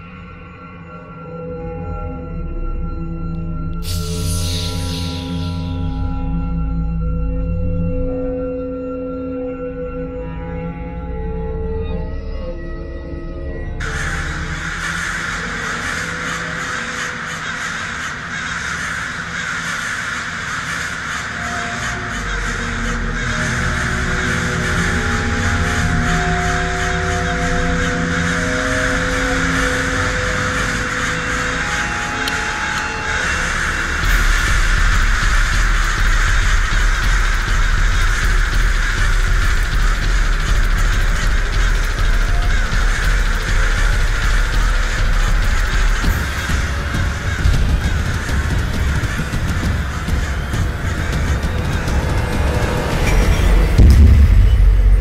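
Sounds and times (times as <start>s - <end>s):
dark film score music: 0.0s - 55.0s
crows cawing: 3.8s - 6.1s, 13.8s - 53.8s.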